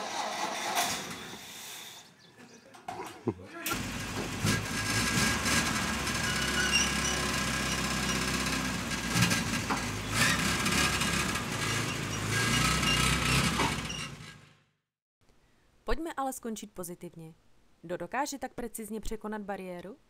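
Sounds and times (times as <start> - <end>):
vehicle engine running: 3.7 - 14.6.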